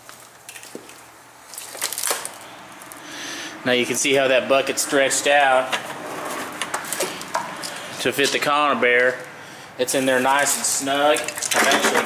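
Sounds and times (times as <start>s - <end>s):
handling clicks and rustles: 5.4s - 9.3s, 9.9s - 12.0s.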